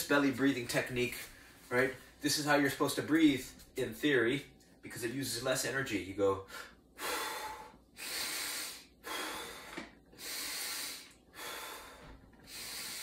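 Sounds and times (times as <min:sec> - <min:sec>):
man breathing through mouth: 0:06.5 - 0:13.0.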